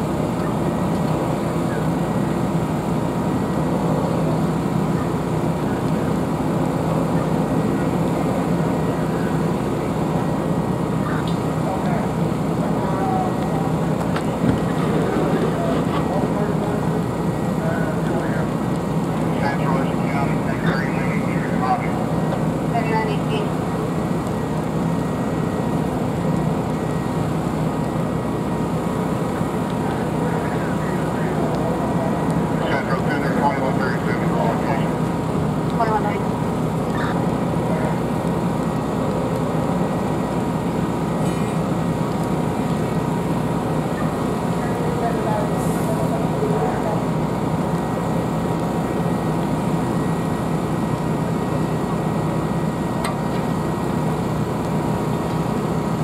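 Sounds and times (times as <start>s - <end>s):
distant indistinct voices: 0.0s - 56.0s
faint steady whine: 0.0s - 56.0s
fire engines and pumps rumbling: 0.0s - 56.0s.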